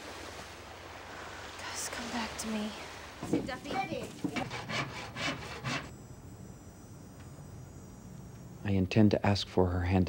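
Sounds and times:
hand saw cutting wood: 0:03.7 - 0:05.9.

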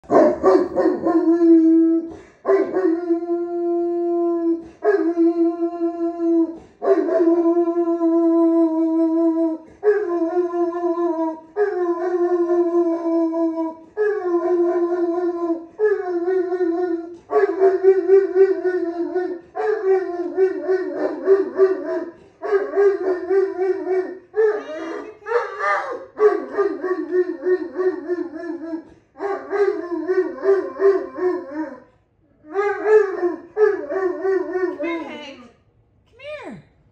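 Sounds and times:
dog howling: 0:00.1 - 0:35.1.

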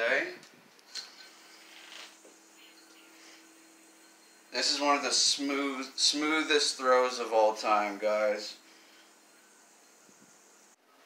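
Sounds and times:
low steady hum: 0:00.0 - 0:11.0
yo-yo spinning on its string: 0:00.9 - 0:10.8.

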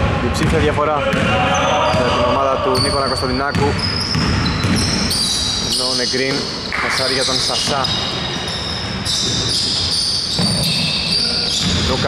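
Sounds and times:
sneakers squeaking on court: 0:00.4 - 0:12.0.

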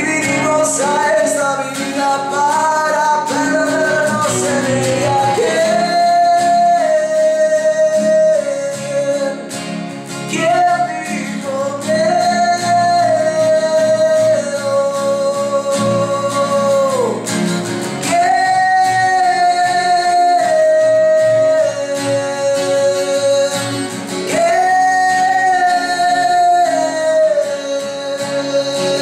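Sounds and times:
person singing long held notes: 0:00.0 - 0:09.5, 0:18.0 - 0:29.0.

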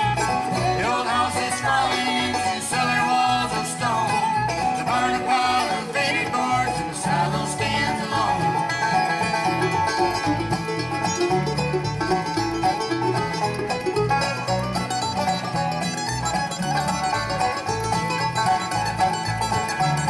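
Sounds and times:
banjo picking: 0:00.0 - 0:20.0
bluegrass band playing: 0:00.0 - 0:20.0.

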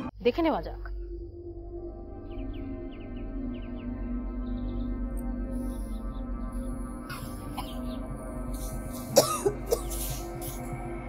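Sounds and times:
background music: 0:00.0 - 0:11.0
woman coughing: 0:09.0 - 0:10.6.

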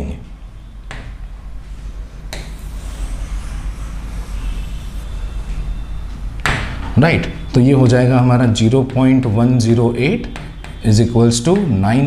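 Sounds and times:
low room rumble with hiss: 0:00.0 - 0:12.0.

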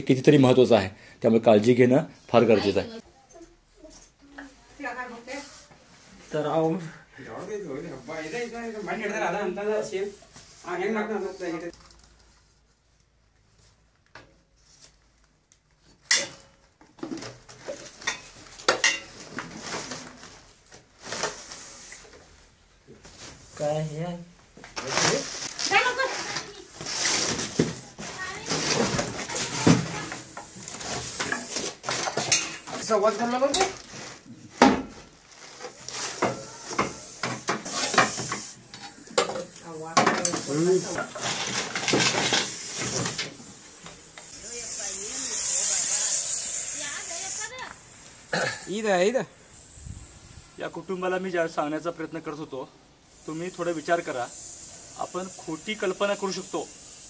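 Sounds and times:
objects clattering and rustling: 0:15.8 - 0:23.5, 0:24.5 - 0:44.2
snake hissing: 0:44.3 - 0:50.6, 0:53.1 - 0:57.0.

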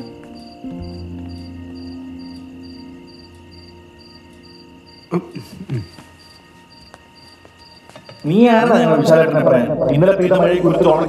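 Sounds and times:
crickets chirping: 0:00.0 - 0:11.0
high insect ringing: 0:00.0 - 0:11.0.

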